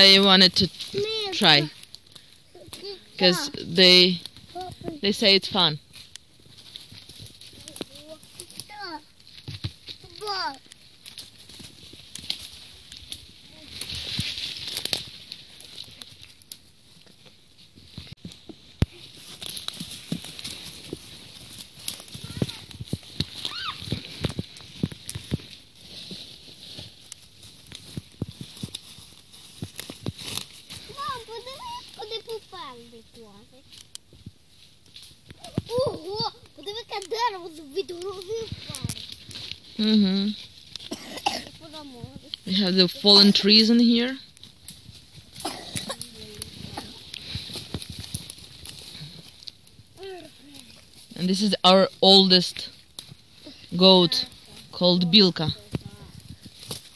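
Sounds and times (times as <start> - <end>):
footsteps crunching dry leaves: 0.0 - 56.9
children's voices: 2.5 - 3.6, 7.6 - 9.1, 10.0 - 10.6, 22.1 - 22.7, 30.8 - 33.6, 35.4 - 39.1, 40.9 - 42.4, 45.5 - 47.1, 50.0 - 50.8.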